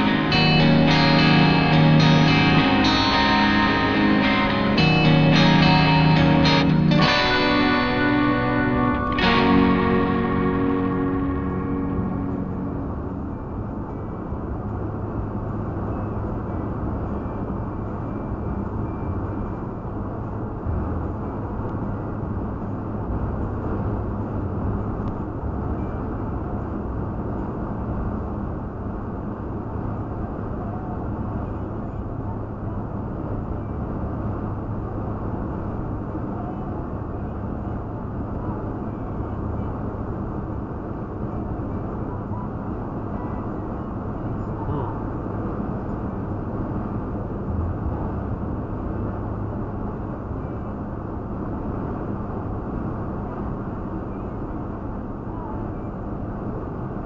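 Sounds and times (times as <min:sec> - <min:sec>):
vehicle road and engine hum: 0:00.0 - 0:57.0.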